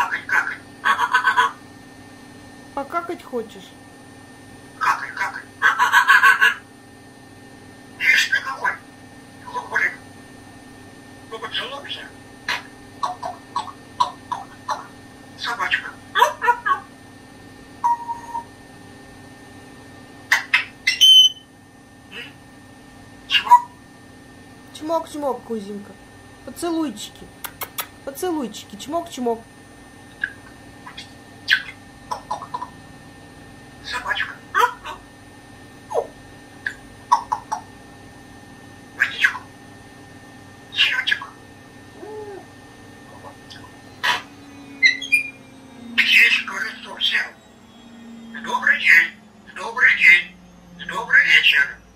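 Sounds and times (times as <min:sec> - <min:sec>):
parrot harsh call: 0:00.0 - 0:01.6, 0:04.8 - 0:06.6, 0:08.0 - 0:08.8, 0:20.3 - 0:21.4, 0:22.1 - 0:22.4, 0:23.3 - 0:23.8, 0:33.8 - 0:35.0, 0:39.0 - 0:39.5, 0:40.7 - 0:41.4, 0:43.5 - 0:45.4, 0:46.0 - 0:47.4, 0:48.4 - 0:51.8
parrot whistling: 0:17.8 - 0:18.5, 0:20.3 - 0:21.5, 0:30.2 - 0:32.7, 0:39.0 - 0:39.5, 0:40.7 - 0:41.4, 0:43.5 - 0:47.4, 0:48.2 - 0:51.8
parrot short call: 0:20.3 - 0:21.4
parrot high whistled note: 0:20.4 - 0:21.5, 0:44.0 - 0:47.4
parrot clicks: 0:27.4 - 0:28.0.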